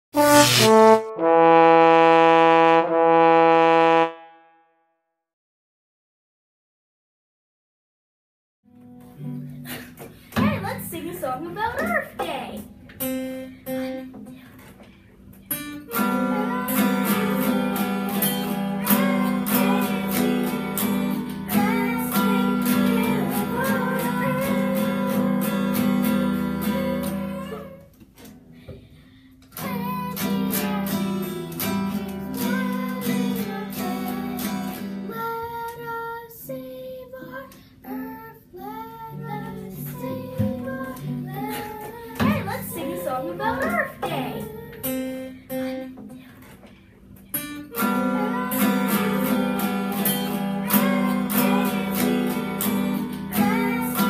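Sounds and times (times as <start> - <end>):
brass fanfare: 0.0 - 4.7
acoustic guitars strumming: 47.4 - 54.0.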